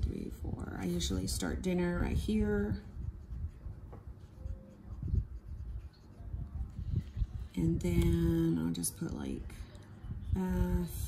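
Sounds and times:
pencil scratching on paper: 0:02.2 - 0:06.7.

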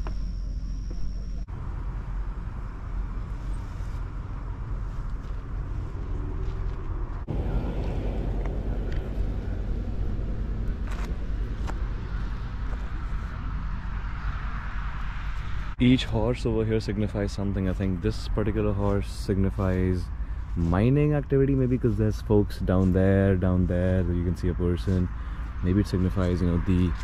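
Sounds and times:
low rumble: 0:00.0 - 0:27.0
road traffic: 0:00.0 - 0:27.0.

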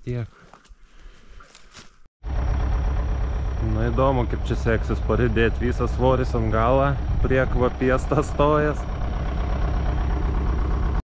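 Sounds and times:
tractor diesel engine running: 0:02.2 - 0:11.0.

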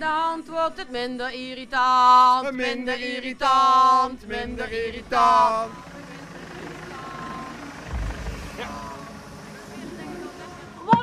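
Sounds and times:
engine idling: 0:03.9 - 0:11.0
low thump: 0:07.9 - 0:08.8.

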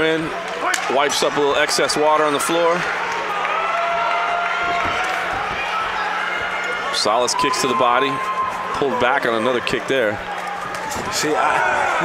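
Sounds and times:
arena crowd noise: 0:00.0 - 0:12.0
spectators shouting: 0:00.2 - 0:12.0.

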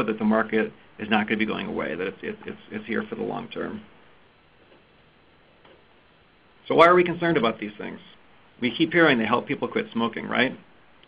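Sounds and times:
faint line hiss: 0:00.0 - 0:11.0.

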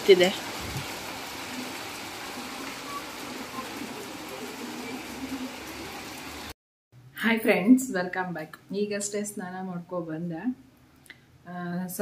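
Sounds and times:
rain on wet paving: 0:00.0 - 0:06.6.

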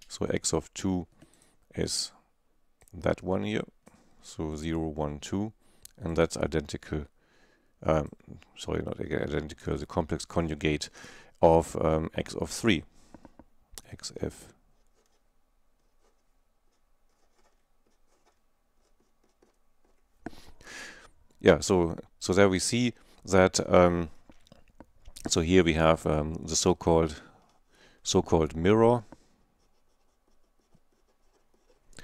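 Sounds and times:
marker pen scratching on paper: 0:14.8 - 0:20.5, 0:29.6 - 0:31.9.

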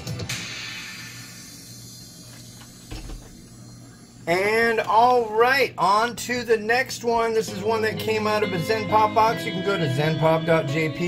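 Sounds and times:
guitar music: 0:07.5 - 0:11.0.

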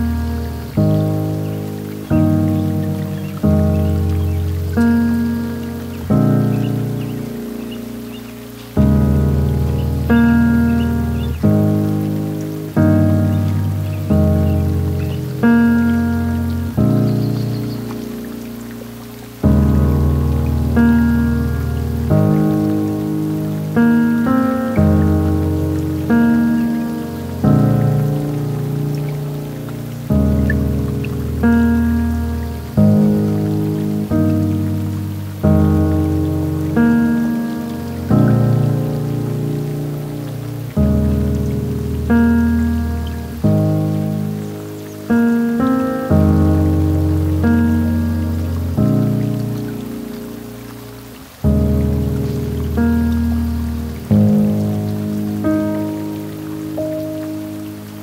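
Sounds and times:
faint steady hiss: 0:00.0 - 0:58.0
gentle solo piano: 0:00.0 - 0:58.0.

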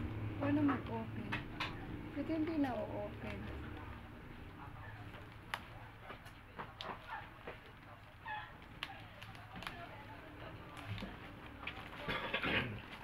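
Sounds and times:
fingers crinkling plastic package: 0:05.0 - 0:12.2.

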